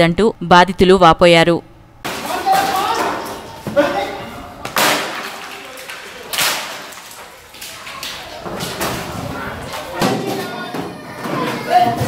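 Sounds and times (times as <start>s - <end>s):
wooden furniture smashing on concrete: 2.1s - 10.8s.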